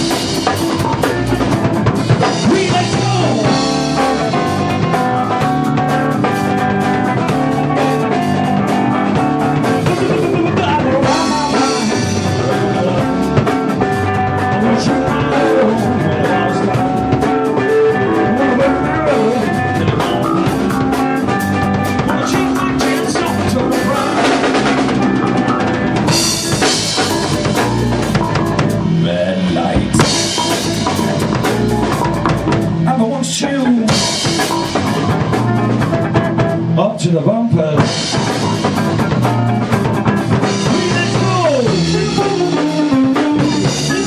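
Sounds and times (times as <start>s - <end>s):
drum kit beat: 0.0s - 44.0s
electric bass: 0.0s - 44.0s
electric guitar: 0.0s - 44.0s.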